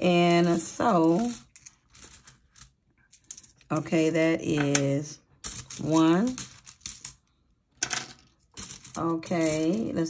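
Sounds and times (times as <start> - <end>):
metal coins clinking: 0.1 - 4.8, 5.4 - 10.0.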